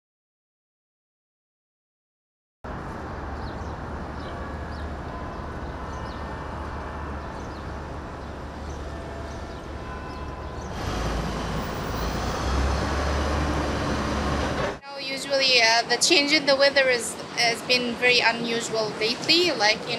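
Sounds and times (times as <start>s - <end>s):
street traffic hum: 2.7s - 19.9s.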